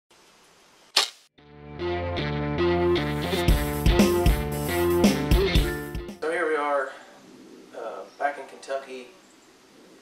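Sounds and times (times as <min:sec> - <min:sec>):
sharp crack: 0:00.9 - 0:01.3
guitar music: 0:01.4 - 0:06.2.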